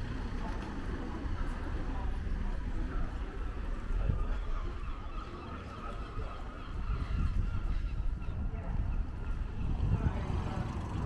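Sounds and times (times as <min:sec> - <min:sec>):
street noise: 0:00.0 - 0:11.0
wind rumble: 0:06.2 - 0:11.0.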